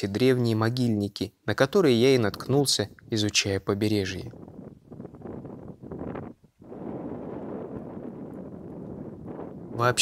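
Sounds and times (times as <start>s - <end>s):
wind across microphone: 1.9s - 10.0s.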